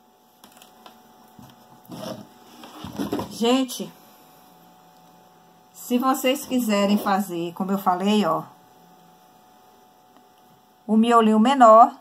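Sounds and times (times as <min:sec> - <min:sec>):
faint electrical hum: 0:00.0 - 0:12.0
woman's voice: 0:03.2 - 0:04.0, 0:05.8 - 0:08.6, 0:10.9 - 0:12.0.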